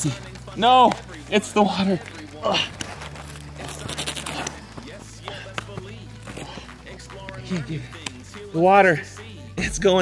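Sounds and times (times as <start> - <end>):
quiet background music: 0.0 - 10.0
man gasping and grunting: 7.4 - 8.0.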